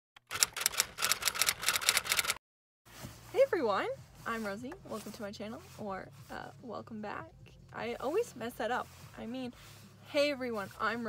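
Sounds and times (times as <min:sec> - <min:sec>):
typewriter key clacks: 0:00.2 - 0:02.4.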